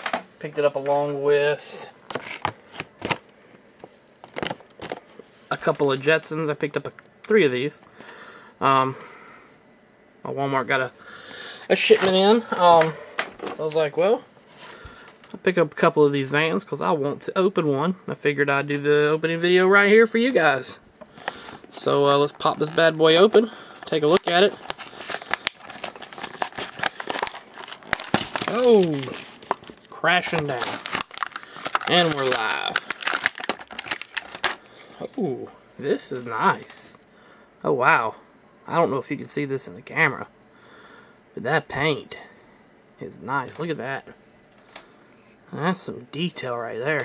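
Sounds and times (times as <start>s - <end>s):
plastic blister packs crackling: 2.0s - 3.4s, 4.2s - 6.0s, 11.8s - 13.9s, 20.2s - 35.0s.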